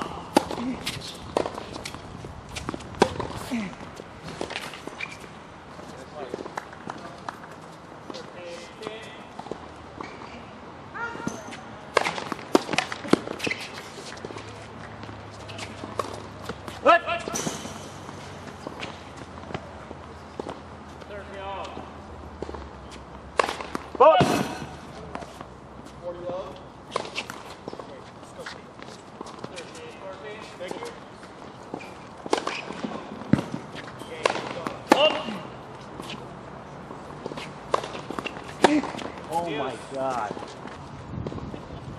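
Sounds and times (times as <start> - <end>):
tennis ball struck by rackets: 0.0 - 3.6, 11.2 - 19.7, 23.3 - 25.5, 31.7 - 36.2, 37.1 - 39.4.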